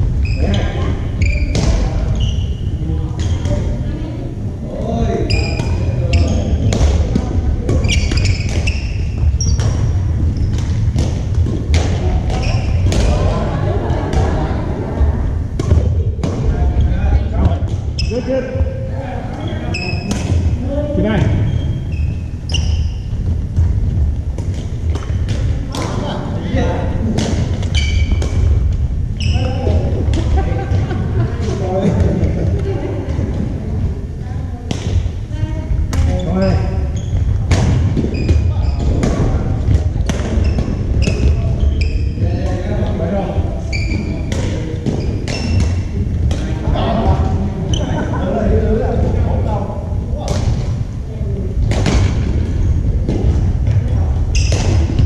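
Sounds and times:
sneakers squeaking: 0.0 - 3.9, 5.2 - 14.5, 15.3 - 48.3, 50.2 - 55.0
voices echoing in hall: 0.0 - 55.0
steady low rumble: 9.1 - 19.3, 20.3 - 36.1, 48.4 - 55.0.

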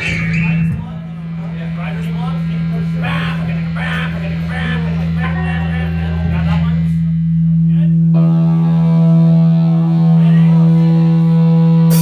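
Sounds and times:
steady low drone: 0.0 - 12.0
electric guitar: 8.1 - 12.0
drum kit: 11.4 - 12.0.

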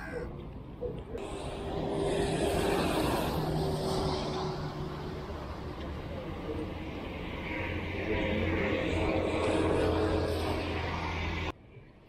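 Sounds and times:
road traffic hum: 0.0 - 12.0
low engine drone: 0.2 - 11.9.

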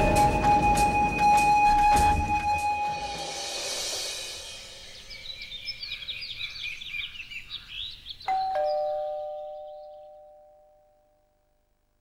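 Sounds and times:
birds chirping: 0.0 - 10.4
two-note doorbell chime: 8.3 - 11.2.

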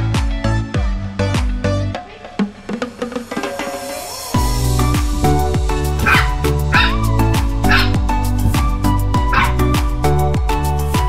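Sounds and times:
background music with steady beat: 0.0 - 11.0
puppy yipping: 6.0 - 8.0, 9.2 - 9.7.

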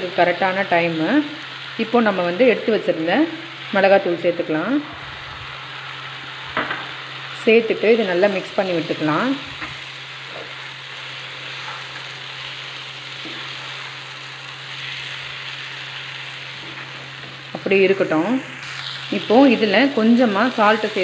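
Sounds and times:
food sizzling in a pan: 0.0 - 21.0.

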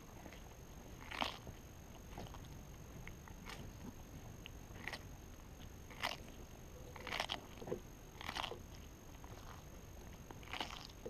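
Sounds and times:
tortoise crunching cucumber: 0.0 - 11.0.

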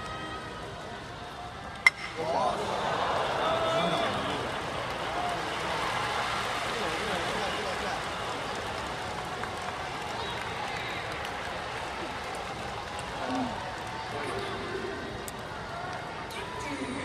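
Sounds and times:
stadium crowd voices: 0.0 - 17.0.

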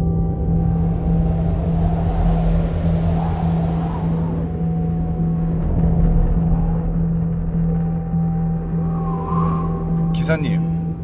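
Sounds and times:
road noise: 0.0 - 5.4.

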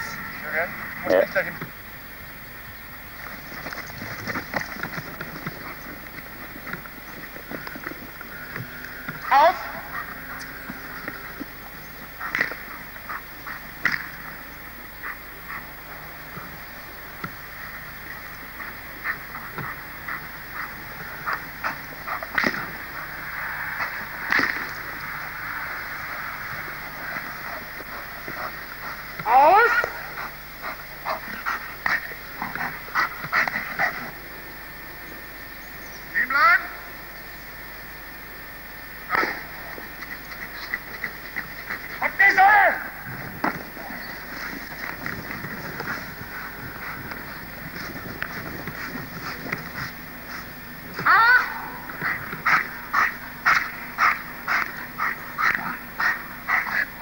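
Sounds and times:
dog barking raspily: 52.0 - 57.0.

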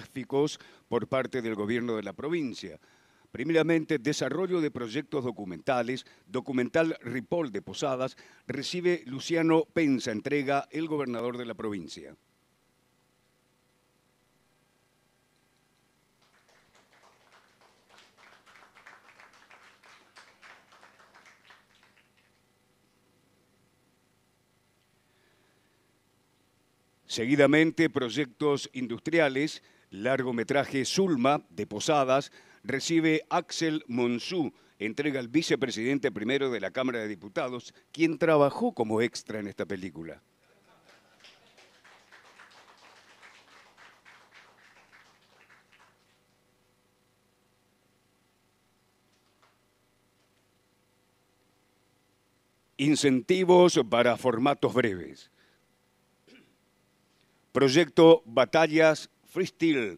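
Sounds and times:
faint applause: 16.2 - 22.4, 40.7 - 46.2.

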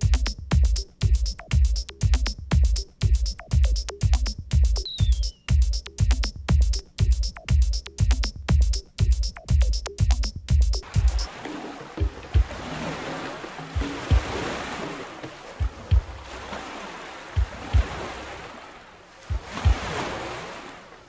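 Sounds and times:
short low thumps: 0.0 - 11.4, 12.0 - 12.6, 13.8 - 14.4, 15.6 - 16.2, 17.4 - 18.1, 19.3 - 20.0
ocean surf wash: 10.8 - 21.0.

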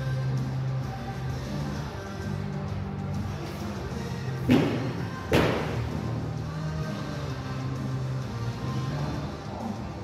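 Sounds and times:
music playing: 0.0 - 10.0
heavy thuds on rubber floor: 4.4 - 6.1.

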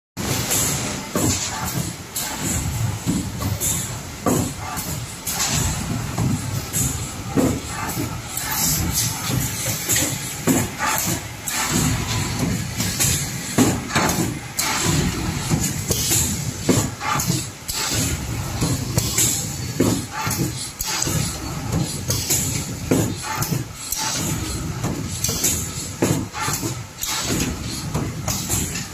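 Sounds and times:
steady machine noise: 0.2 - 28.9.

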